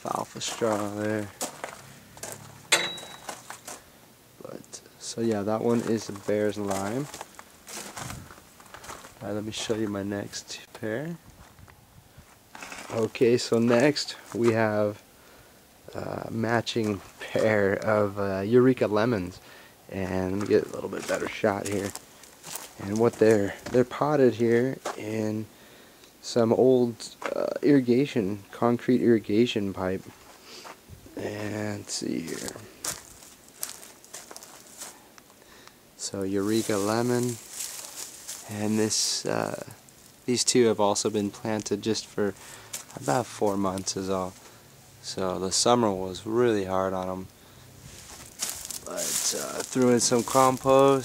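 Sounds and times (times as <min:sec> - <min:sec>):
rustling and scuffing: 0:00.0 - 0:03.9, 0:05.1 - 0:14.8, 0:16.6 - 0:18.0, 0:20.0 - 0:25.1, 0:30.0 - 0:35.4, 0:36.1 - 0:51.0.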